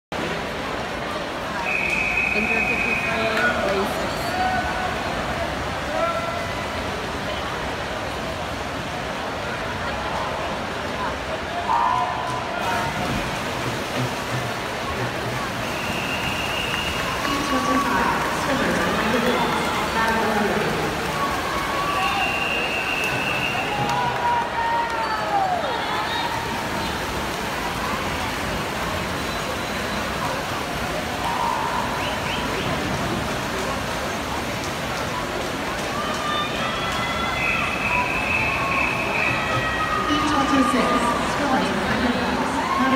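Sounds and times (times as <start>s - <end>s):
crowd cheering and shouting: 11.5s - 13.2s, 15.0s - 28.6s, 31.0s - 32.8s, 35.8s - 42.9s.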